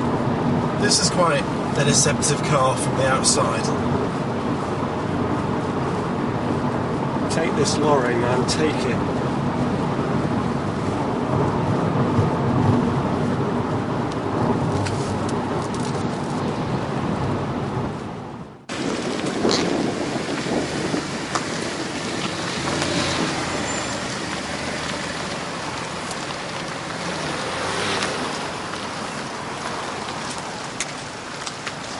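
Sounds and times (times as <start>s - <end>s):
car road and engine noise: 0.0s - 31.9s
hissy outdoor car sound: 0.0s - 31.9s.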